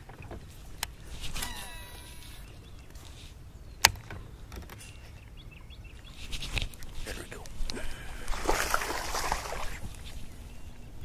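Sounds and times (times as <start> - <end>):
fishing reel whining: 1.3 - 2.5.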